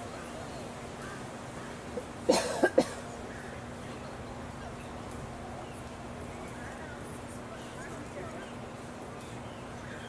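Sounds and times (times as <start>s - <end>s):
person coughing: 2.3s - 3.0s.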